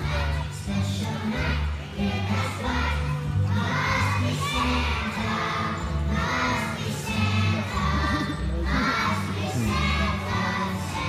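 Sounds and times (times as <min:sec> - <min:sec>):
accompaniment music: 0:00.0 - 0:11.0
children's choir singing: 0:00.0 - 0:11.0.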